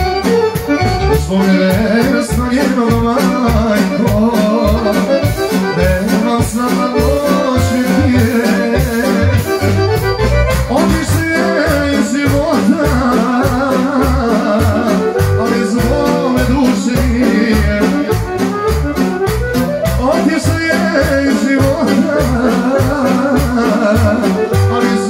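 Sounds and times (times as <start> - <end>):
accordion: 0.0 - 25.0
steady bass beat: 0.0 - 25.0.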